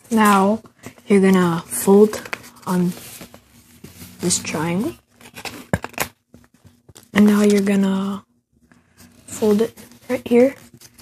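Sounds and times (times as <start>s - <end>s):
paper crackling: 0.0s - 7.8s.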